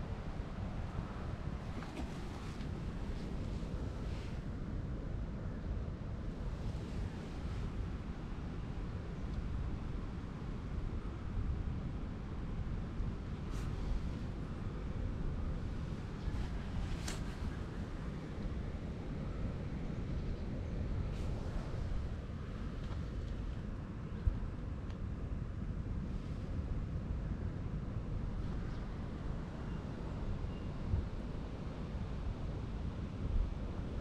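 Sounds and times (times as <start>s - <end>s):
faint rustles: 1.6s - 4.4s, 15.6s - 17.9s.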